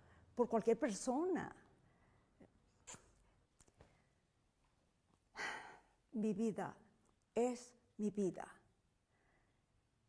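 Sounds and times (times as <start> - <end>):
faint mouth clicks: 2.8 - 3.7.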